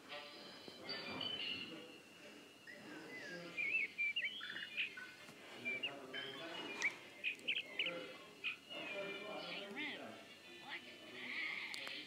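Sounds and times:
high bird-like chirps: 2.7s - 8.8s.

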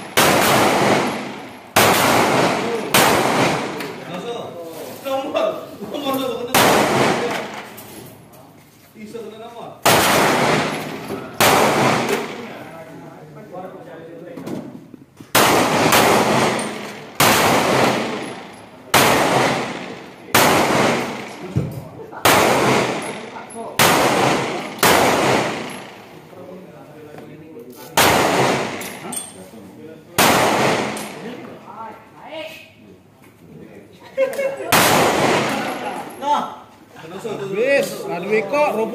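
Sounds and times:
pistol shots with echo: 0.0s - 4.0s, 6.5s - 7.7s, 9.8s - 12.6s, 15.3s - 21.6s, 22.2s - 26.2s, 28.0s - 29.1s, 30.2s - 31.4s, 34.7s - 36.0s.

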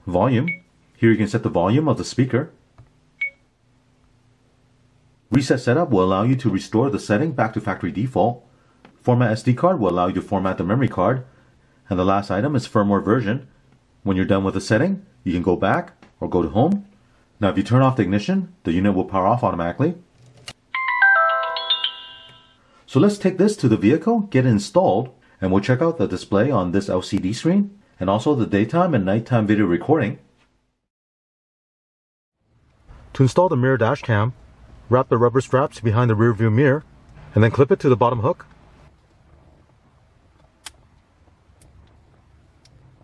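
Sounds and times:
faint steady hum: 0.0s - 20.9s, 21.5s - 30.8s
descending electronic chime: 20.8s - 22.6s.

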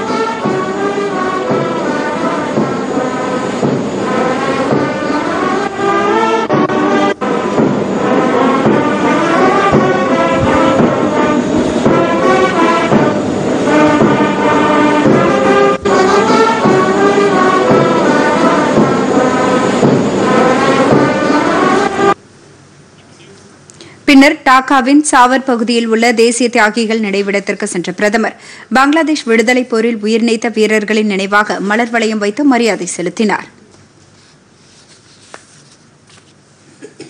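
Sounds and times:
brass band sustained chords: 0.0s - 22.2s.

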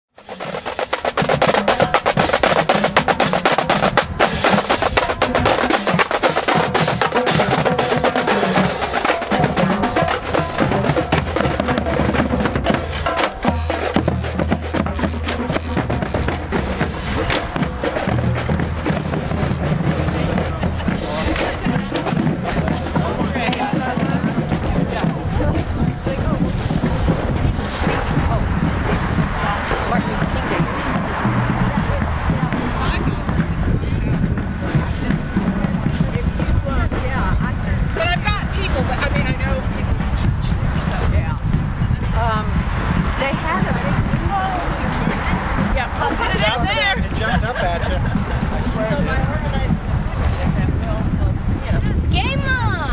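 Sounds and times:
marching snare drums: 0.2s - 52.9s
steady low notes: 0.2s - 52.9s.

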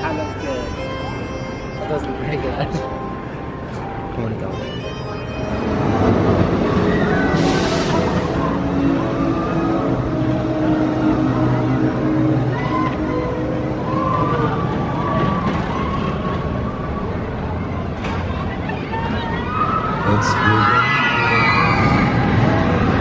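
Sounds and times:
murmur of voices: 0.0s - 23.0s
roller coaster rumbling on track: 0.0s - 23.0s.

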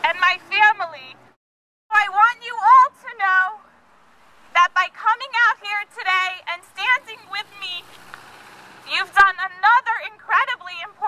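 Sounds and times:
woman speaking through megaphone: 0.0s - 1.2s, 1.9s - 3.6s, 4.6s - 7.9s, 8.9s - 11.0s.

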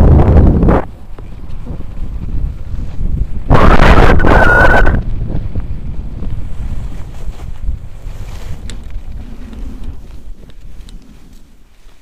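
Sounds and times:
wind buffeting microphone: 0.0s - 12.0s
skis sliding on snow: 6.4s - 12.0s.

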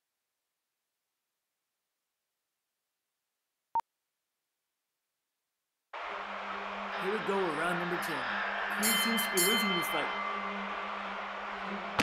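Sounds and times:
arena crowd din: 6.0s - 12.0s.

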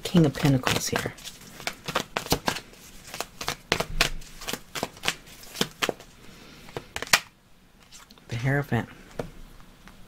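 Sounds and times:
cards being shuffled: 0.1s - 8.1s.

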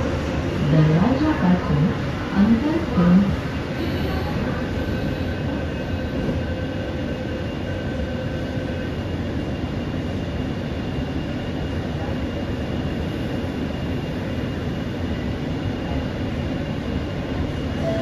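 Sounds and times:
metro train interior noise: 0.0s - 18.0s.

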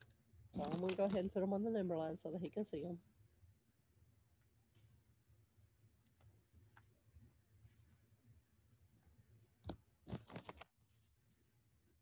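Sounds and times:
plastic cubes clicking on paper: 0.0s - 1.3s, 9.6s - 10.7s.

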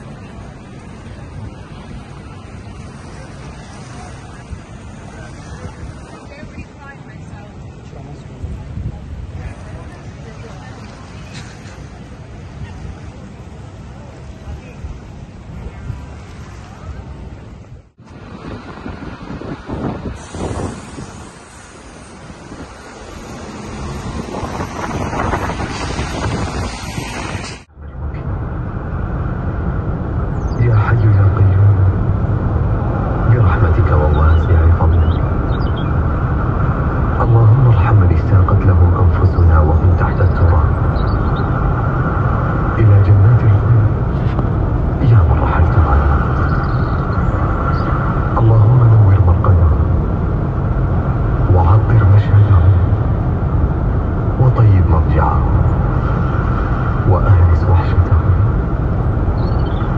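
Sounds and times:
city road traffic: 0.0s - 59.9s
wind noise on microphone: 0.0s - 59.9s
car interior road drone: 17.8s - 59.9s
low male voice: 30.6s - 32.1s, 33.2s - 35.3s, 37.1s - 40.9s, 42.7s - 44.4s, 45.0s - 46.6s, 47.6s - 50.0s, 51.4s - 53.1s, 54.3s - 55.9s, 57.0s - 58.6s.

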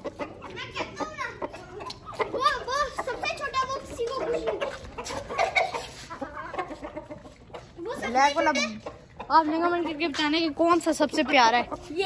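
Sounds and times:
chickens clucking: 0.0s - 12.0s.

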